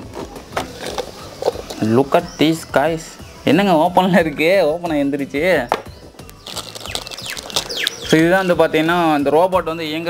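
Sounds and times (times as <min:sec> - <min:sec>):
plastic packaging clicks and rustling: 0:06.4 - 0:07.9.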